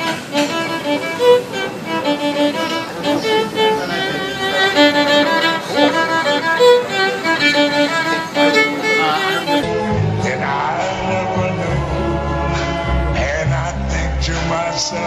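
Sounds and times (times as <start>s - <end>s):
solo violin melody: 0.0s - 9.8s.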